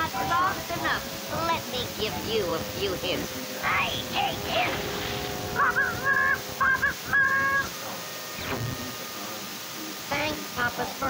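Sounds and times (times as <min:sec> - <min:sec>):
cartoon character laughing: 0:05.5 - 0:07.8.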